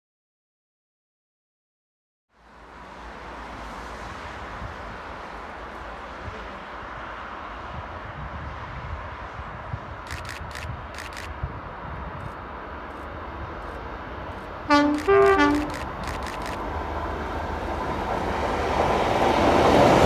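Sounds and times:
diesel train approaching: 0:02.4 - 0:20.0
distant traffic rumble: 0:02.4 - 0:20.0.

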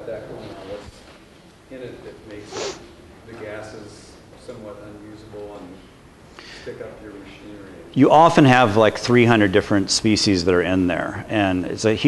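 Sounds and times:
short hiss: 0:02.4 - 0:02.9.

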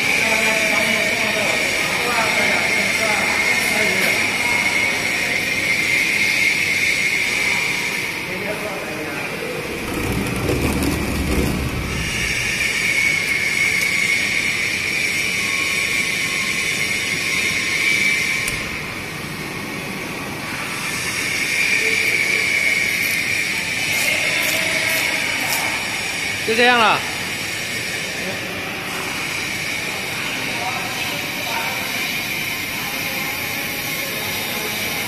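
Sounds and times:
machine whirring hiss: 0:00.0 - 0:35.0.

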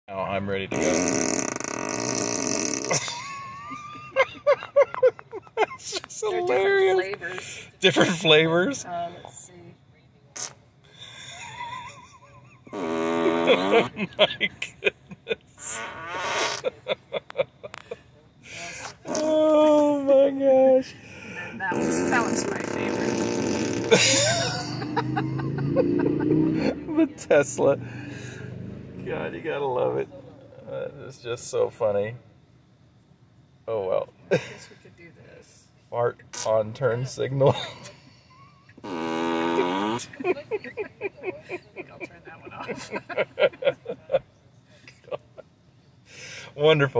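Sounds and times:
fart sound through car speakers: 0:00.7 - 0:03.1, 0:10.4 - 0:10.6, 0:12.7 - 0:14.0, 0:15.6 - 0:16.7, 0:21.6 - 0:25.3, 0:38.8 - 0:40.1.

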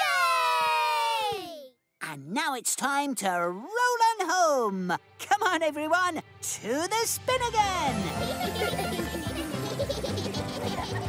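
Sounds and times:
cartoon background music: 0:03.2 - 0:11.0.

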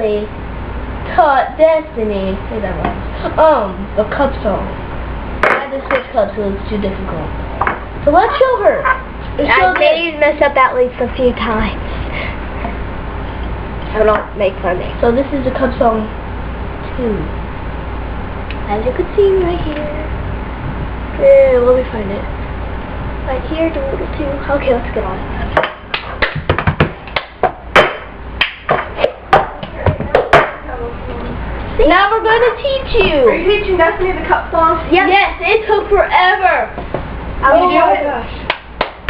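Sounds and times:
low hum: 0:00.0 - 0:26.4
hand claps: 0:25.6 - 0:30.6, 0:38.5 - 0:39.0.

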